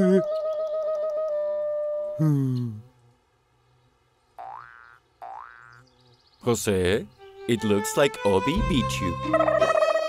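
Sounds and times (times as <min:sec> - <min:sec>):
cartoon boing sound effect: 0:04.4 - 0:05.7.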